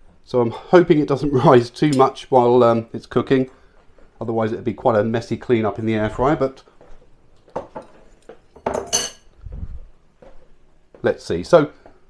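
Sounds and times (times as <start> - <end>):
metal utensil clinking dishware: 8.6 - 9.3.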